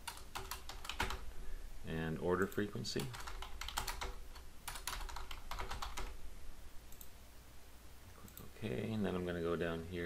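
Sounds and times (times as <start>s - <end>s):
computer keyboard typing: 0.0s - 1.2s, 2.4s - 6.2s
low steady hum: 0.0s - 10.0s.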